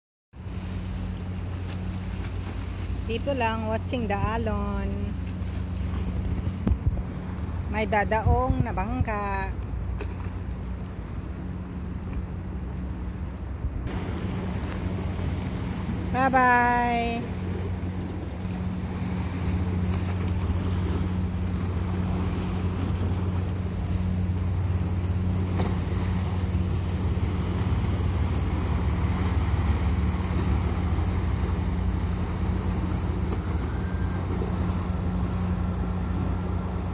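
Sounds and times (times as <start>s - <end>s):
boat engine humming: 0.3s - 36.9s
churning wake water: 0.3s - 36.9s
wind on microphone: 5.8s - 9.6s.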